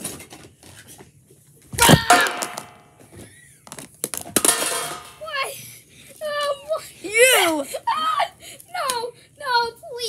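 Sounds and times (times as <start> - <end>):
plastic toy plates clattering: 4.2 - 5.2.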